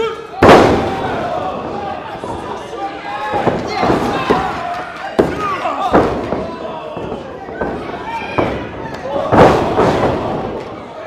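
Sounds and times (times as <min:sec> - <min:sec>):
crowd and wrestlers shouting: 0:00.0 - 0:11.0.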